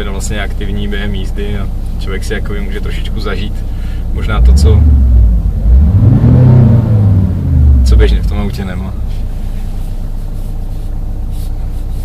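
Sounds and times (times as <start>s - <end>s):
synthetic engine revving: 4.2s - 8.7s.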